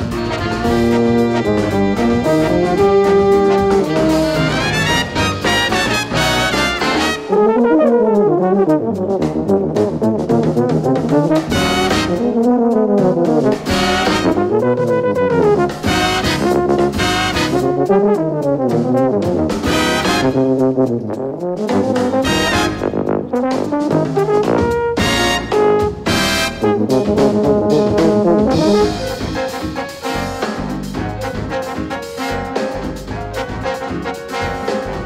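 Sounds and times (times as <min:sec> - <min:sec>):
brass section hits: 0:00.0 - 0:09.0, 0:11.3 - 0:21.0, 0:21.6 - 0:35.0
low brass solo melody: 0:00.0 - 0:30.6
jazz big band playing: 0:00.0 - 0:35.0.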